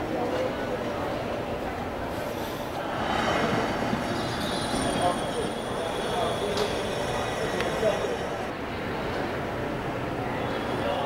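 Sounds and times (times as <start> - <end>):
steady high whine: 2.7 - 8.6
train rumbling on elevated track: 2.7 - 8.6.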